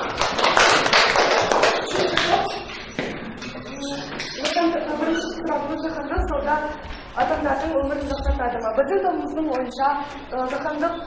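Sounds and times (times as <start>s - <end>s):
children applauding: 0.0s - 2.7s.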